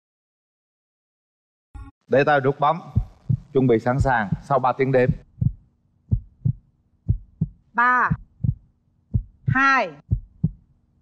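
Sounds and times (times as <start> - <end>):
heartbeat thumps: 2.8 - 10.8.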